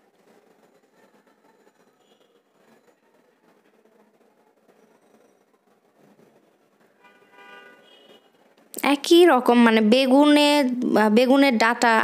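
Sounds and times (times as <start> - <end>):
faint vehicle horn: 1.9 - 2.8, 6.9 - 8.5.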